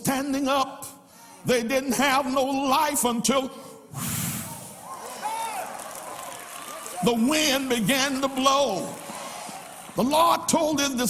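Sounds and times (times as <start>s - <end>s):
man blowing into microphone: 3.9s - 4.8s.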